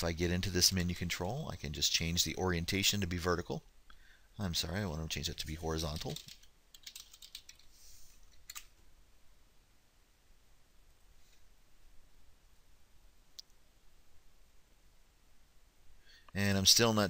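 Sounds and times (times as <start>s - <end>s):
typing on computer keyboard: 5.9s - 7.7s, 8.3s - 8.7s.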